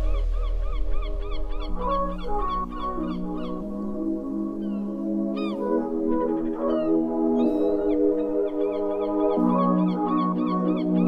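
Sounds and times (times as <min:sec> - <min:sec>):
background music chords: 0:00.0 - 0:11.0.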